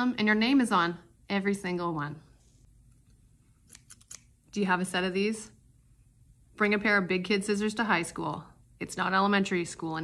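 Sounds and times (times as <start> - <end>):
scissors snipping: 3.6 - 4.3.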